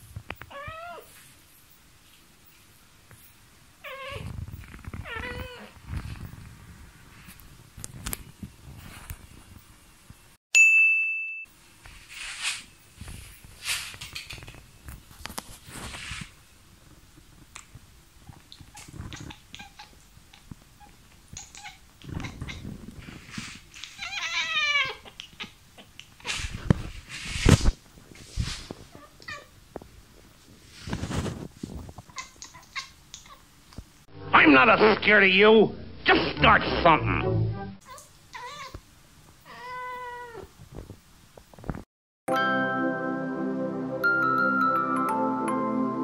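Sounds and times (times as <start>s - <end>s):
cat meowing: 0.5s - 1.1s, 5.0s - 5.8s, 23.9s - 25.6s, 37.9s - 38.8s, 39.5s - 40.5s
soft clicks and rustles: 4.1s - 10.2s, 11.8s - 24.0s, 25.2s - 34.0s, 40.5s - 41.9s.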